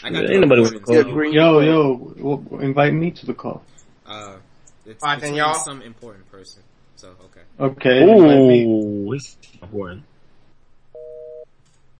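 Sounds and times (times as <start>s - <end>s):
telephone busy signal beep: 11.0s - 11.4s.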